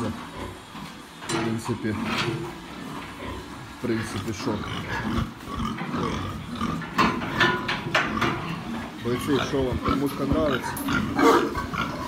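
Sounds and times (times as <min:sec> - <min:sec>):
pigs grunting: 0:00.0 - 0:01.0, 0:01.7 - 0:12.0.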